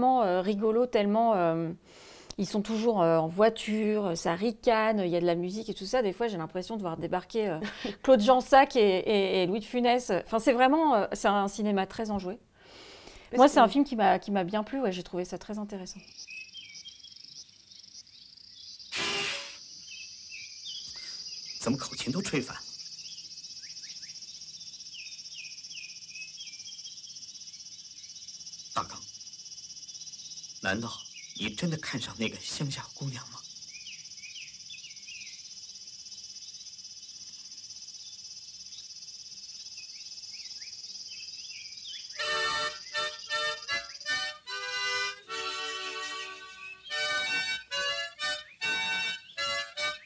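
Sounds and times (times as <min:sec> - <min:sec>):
bird chirps: 0:14.5 - 0:50.0
high insect drone: 0:16.0 - 0:50.0
short rising chirps: 0:18.9 - 0:19.7
harmonica chord: 0:42.2 - 0:50.0.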